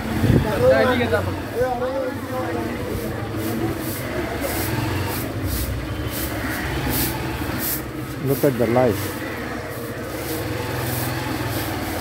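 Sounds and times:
faint voices: 0.0s - 11.4s.

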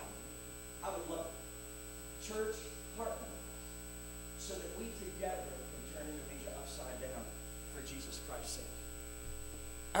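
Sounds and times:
electrical mains hum: 0.0s - 10.0s
man speaking: 0.8s - 1.5s, 2.2s - 3.5s, 4.4s - 8.8s.

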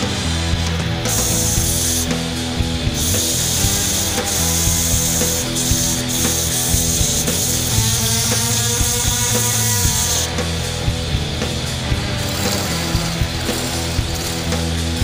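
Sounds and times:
background music: 0.0s - 15.0s
chisel scraping spinning wood: 1.0s - 2.2s, 3.0s - 10.4s, 11.4s - 15.0s.

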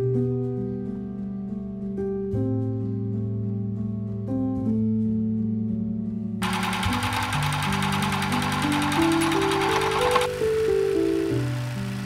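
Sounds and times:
background music: 0.0s - 12.0s
electric sewing machine stitching: 6.4s - 12.0s.

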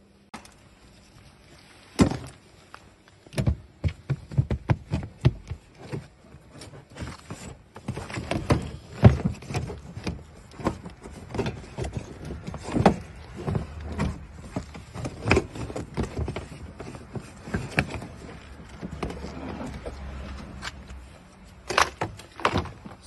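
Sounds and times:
car boot lining knocks and rustling: 1.9s - 2.5s, 3.2s - 20.3s, 21.7s - 23.0s.

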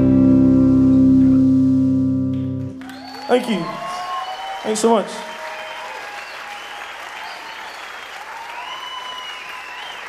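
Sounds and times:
electric and bass guitar chord: 0.0s - 2.8s.

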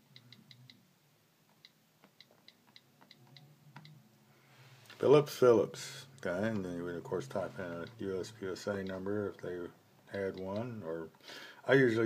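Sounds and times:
on-screen keyboard clicks: 1.5s - 4.0s.

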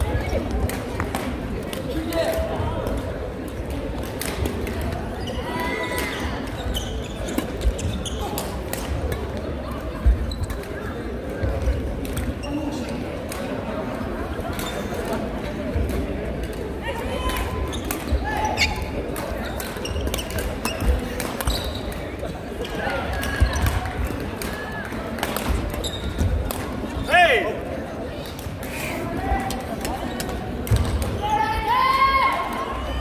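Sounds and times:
voices chattering: 0.0s - 33.0s
shoes squeaking: 5.1s - 8.6s, 17.6s - 23.9s, 25.4s - 27.4s.

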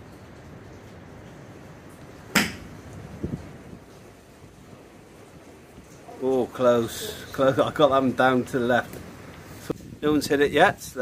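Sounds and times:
golf club striking ball: 2.3s - 2.8s
steady wind noise: 2.4s - 5.9s, 9.4s - 11.0s.

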